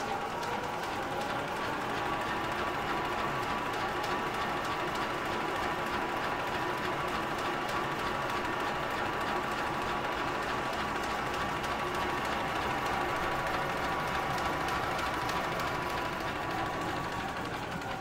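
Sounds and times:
fast fine clicking of rollers: 0:00.0 - 0:18.0
machine mechanical whir: 0:00.0 - 0:18.0.

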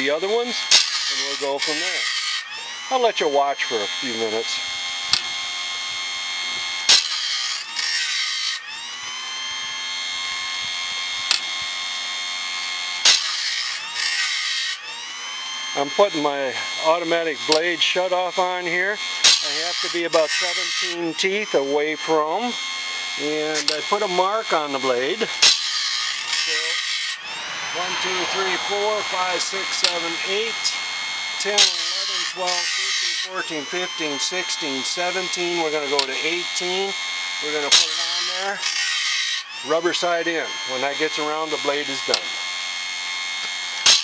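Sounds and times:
grinding wheel motor whine: 0:00.0 - 0:44.0
wheel rasping on saw tooth: 0:00.0 - 0:44.0.

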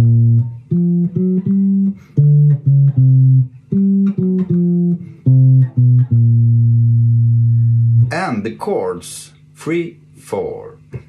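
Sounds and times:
electric guitar walking bass line: 0:00.0 - 0:08.6.

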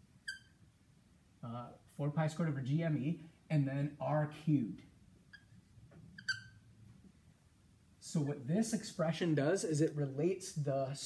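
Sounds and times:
marker squeaking on whiteboard: 0:00.2 - 0:00.6, 0:05.2 - 0:06.7.

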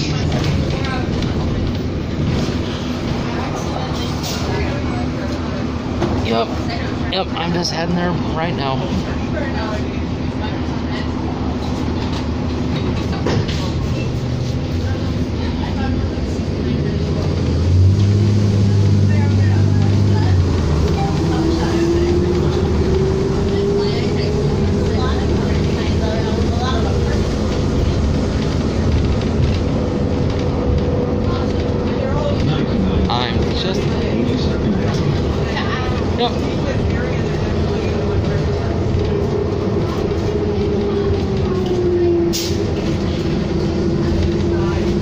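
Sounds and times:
bus engine drone: 0:00.0 - 0:45.0
road noise: 0:00.0 - 0:45.0.

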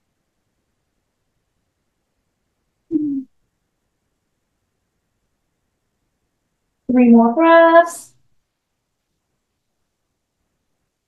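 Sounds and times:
low vocal hum: 0:02.9 - 0:03.3.

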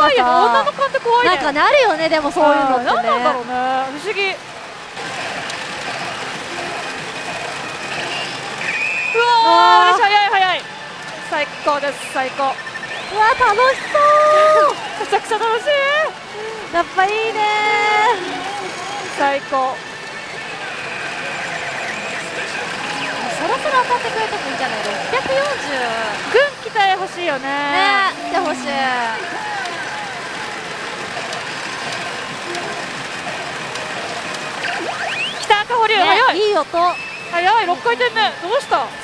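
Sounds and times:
electronic machine sounds: 0:00.0 - 0:39.0
gaming parlor din: 0:00.0 - 0:39.0
pachinko ball clatter: 0:14.6 - 0:39.0.

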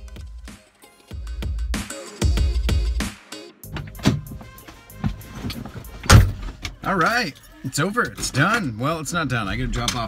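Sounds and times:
car door slamming: 0:03.7 - 0:06.8
knocks and rustles in car seat: 0:03.8 - 0:06.6.

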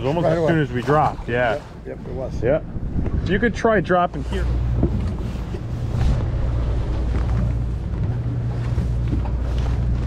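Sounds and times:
boat engine humming: 0:00.0 - 0:10.0.

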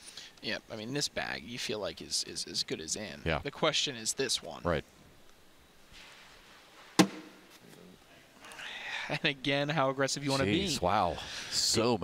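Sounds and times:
bag thudding on board: 0:07.0 - 0:07.5.

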